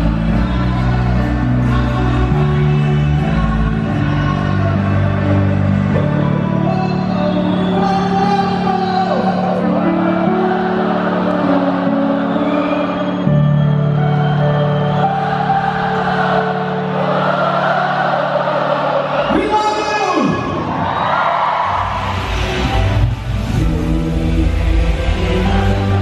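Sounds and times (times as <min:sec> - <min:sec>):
crowd singing along and cheering: 0:00.0 - 0:26.0.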